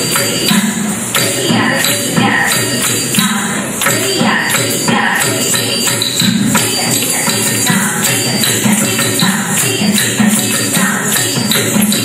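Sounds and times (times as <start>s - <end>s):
ankle bells jingling: 0.0s - 12.0s
hand drum rhythm: 0.0s - 12.0s
woman chanting syllables: 0.0s - 12.0s.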